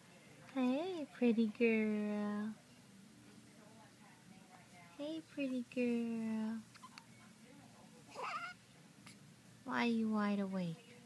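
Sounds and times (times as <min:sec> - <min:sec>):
baby cooing: 0:08.1 - 0:08.6.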